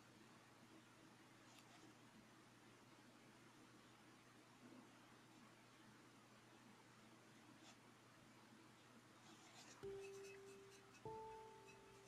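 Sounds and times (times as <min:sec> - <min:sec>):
brush scratching on paper: 0:09.2 - 0:12.0
plucked note ringing: 0:09.8 - 0:12.0.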